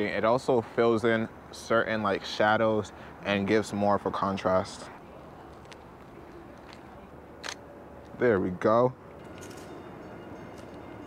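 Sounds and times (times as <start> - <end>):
distant traffic hum: 0.0 - 11.0.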